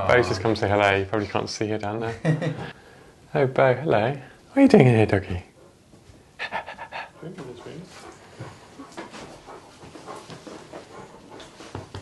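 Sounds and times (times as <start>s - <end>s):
laughter: 2.0s - 2.8s
large dog panting: 6.4s - 12.0s.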